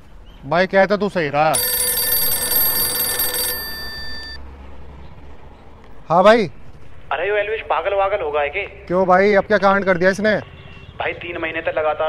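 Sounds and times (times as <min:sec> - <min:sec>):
mobile phone ringtone: 0:01.6 - 0:04.4.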